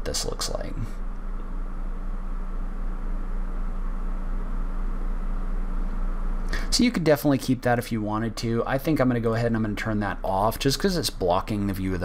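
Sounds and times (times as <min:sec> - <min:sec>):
low machine hum with hiss: 0:00.0 - 0:12.0.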